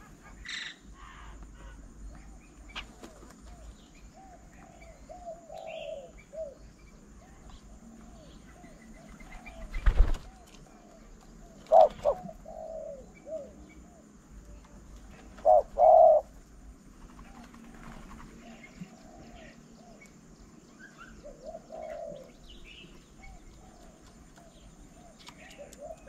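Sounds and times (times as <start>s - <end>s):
doves cooing: 0.0s - 26.0s
small birds chirping faintly: 0.0s - 26.0s.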